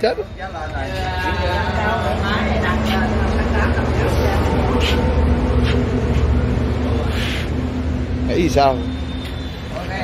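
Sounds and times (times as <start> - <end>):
engine droning: 0.0 - 10.0.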